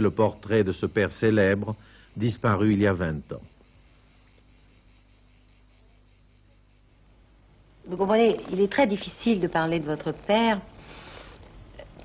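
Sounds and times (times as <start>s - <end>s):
faint low hum: 0.0s - 12.0s
insects chirring: 0.0s - 12.0s.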